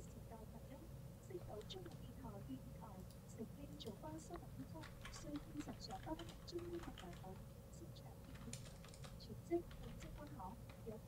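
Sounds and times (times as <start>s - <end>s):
keyboard typing clicks: 3.8s - 7.4s, 8.2s - 11.0s.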